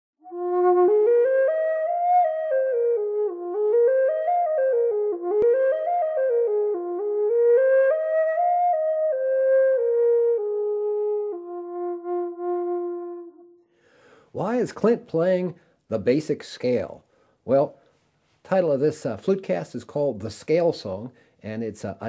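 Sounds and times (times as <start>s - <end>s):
flute playing scale: 0.2s - 13.7s.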